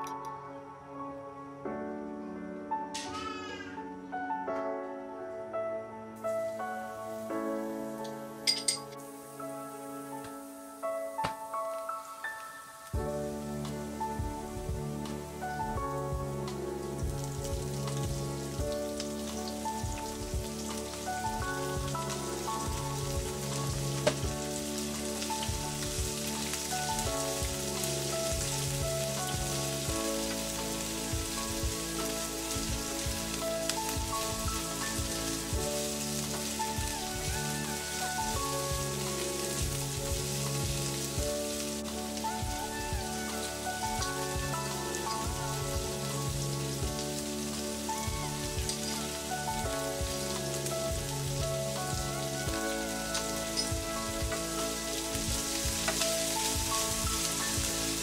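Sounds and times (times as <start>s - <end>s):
food sizzling in hot oil: 6.2s - 58.0s.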